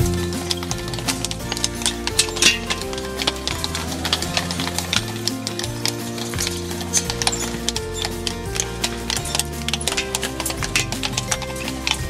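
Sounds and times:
horse hooves on cobblestones: 0.0 - 12.0
instrumental background music: 0.0 - 12.0.

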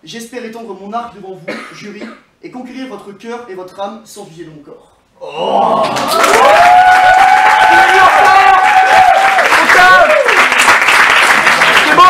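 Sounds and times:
drawn-out cheering voices: 5.4 - 10.4
audience applauding: 5.7 - 12.0.

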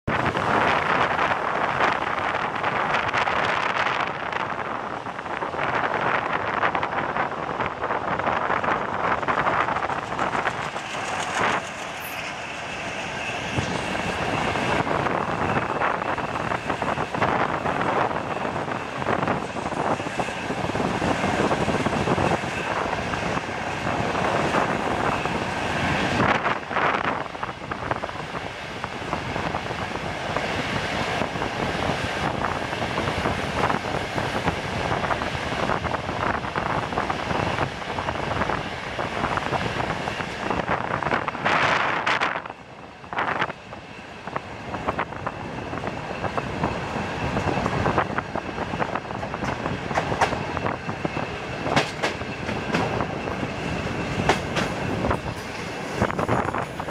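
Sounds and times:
train wheels rumbling on rails: 0.0 - 56.9
wheels clacking over rail joints: 49.1 - 56.9.

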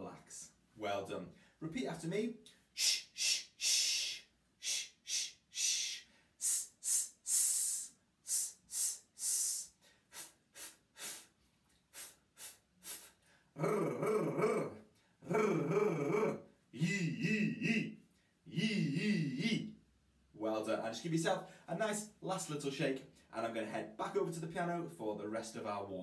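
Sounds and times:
man making shh hisses: 2.7 - 13.4
man's voiced sounds bending in pitch: 2.8 - 9.7, 13.6 - 19.7.

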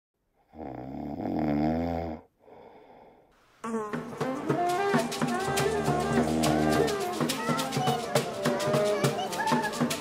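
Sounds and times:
man snoring: 0.4 - 3.3.

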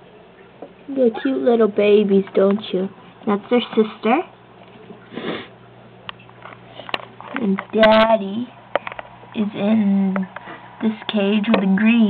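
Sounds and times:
person sniffing: 5.1 - 5.5.

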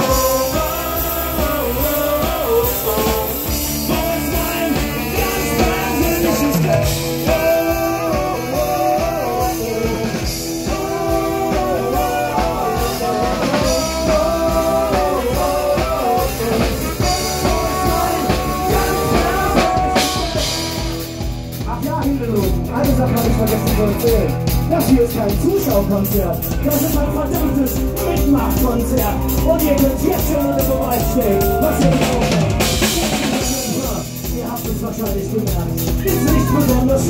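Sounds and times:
bass guitar: 0.0 - 37.0
drum kit: 0.0 - 37.0
electric guitar: 0.0 - 37.0.

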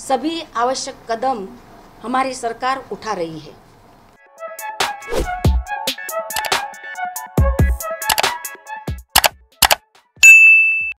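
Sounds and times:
double mouse clicks: 6.4 - 6.6, 8.1 - 8.3, 9.2 - 9.8
notification bell ding: 10.2 - 11.0.

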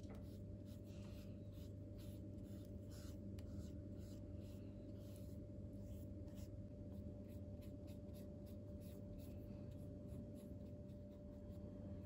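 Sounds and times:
steady low hum: 0.0 - 12.0
brush strokes on paper: 0.1 - 11.8.

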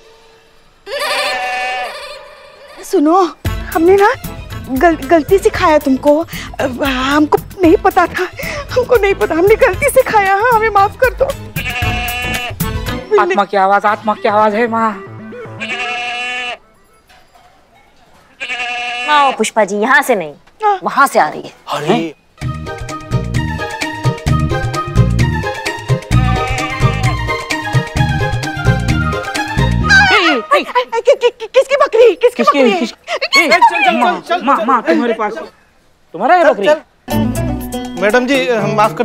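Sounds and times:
goat bleating: 0.9 - 2.8, 11.5 - 12.6, 15.3 - 16.6, 18.2 - 19.5, 26.1 - 27.3.

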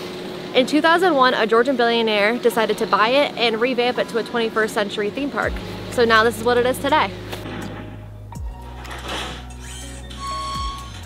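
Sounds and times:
deep bass line: 5.4 - 11.0
high synth tone: 9.6 - 11.0.

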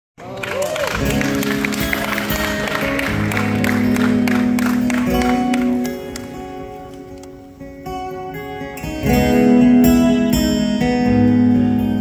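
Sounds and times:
audience applause: 0.2 - 6.4
acoustic guitar playing: 0.8 - 12.0.

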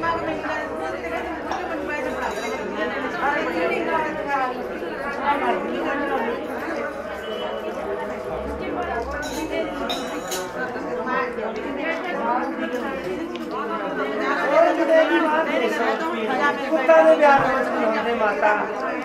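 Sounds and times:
women chattering: 0.0 - 19.0.

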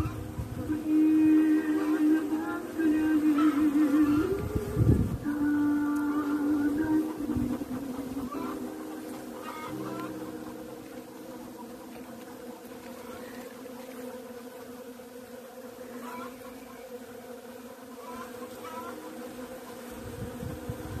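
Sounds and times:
honeybees buzzing: 0.0 - 21.0.

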